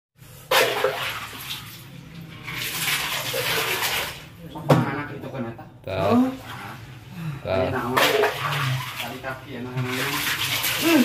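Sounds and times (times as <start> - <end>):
water pouring and splashing: 0.2 - 4.4, 7.8 - 11.0.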